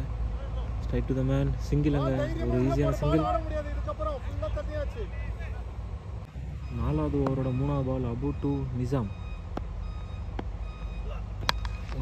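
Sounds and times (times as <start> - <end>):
high electronic beep: 6.6 - 11.9.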